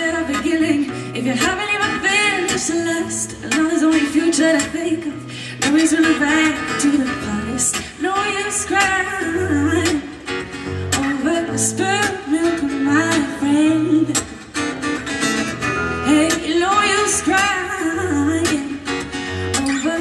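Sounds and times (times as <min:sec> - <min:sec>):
woman singing pop-folk song: 0:00.0 - 0:14.7, 0:15.8 - 0:20.0
strummed acoustic guitar: 0:00.0 - 0:20.0.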